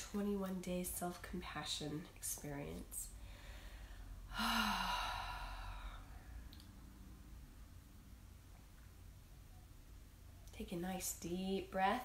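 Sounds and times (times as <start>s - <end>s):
woman sighing: 4.3s - 6.1s.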